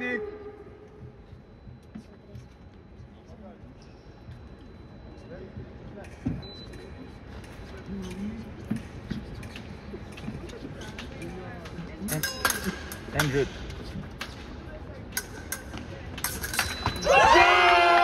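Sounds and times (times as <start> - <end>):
fencers' footwork: 1.0 - 17.4
fencing blades clicking: 10.9 - 14.5, 15.1 - 17.0.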